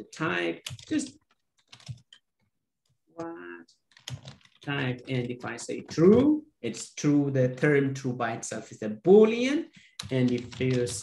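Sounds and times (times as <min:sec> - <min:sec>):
typing on computer keyboard: 0:00.6 - 0:02.2, 0:03.9 - 0:06.9, 0:09.9 - 0:11.0.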